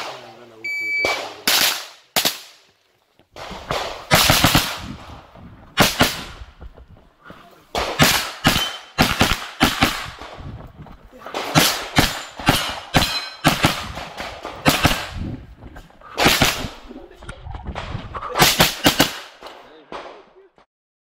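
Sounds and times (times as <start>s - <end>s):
gunshots with echo: 3.4s - 6.4s, 7.7s - 10.5s, 11.2s - 15.4s, 16.1s - 16.9s, 17.7s - 20.4s.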